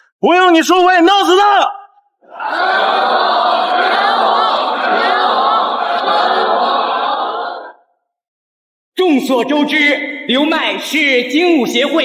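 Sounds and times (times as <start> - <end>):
crowd chanting: 2.2 - 7.9.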